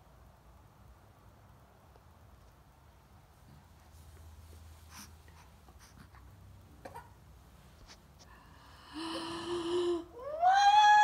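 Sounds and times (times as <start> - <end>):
baby breathy sounds: 4.8 - 7.2.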